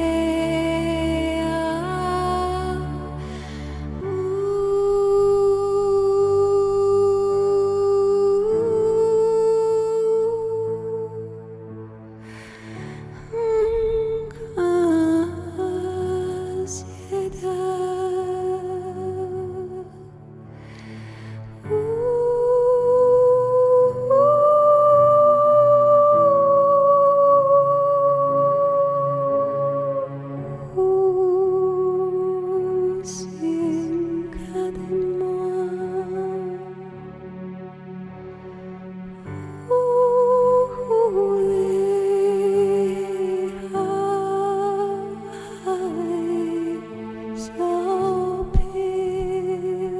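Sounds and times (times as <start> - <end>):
short breath: 12.2 - 13.1, 20.6 - 21.4.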